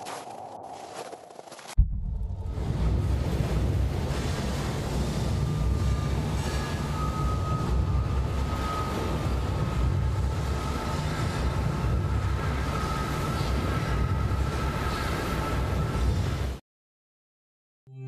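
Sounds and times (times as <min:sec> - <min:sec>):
deep steady rumble: 0:01.8 - 0:16.6.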